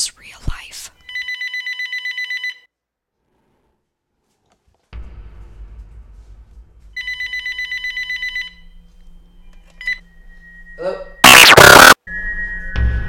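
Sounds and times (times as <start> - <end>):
telephone ringing: 1.1 - 2.7, 7.0 - 8.7
loud harsh noise burst: 11.2 - 12.0.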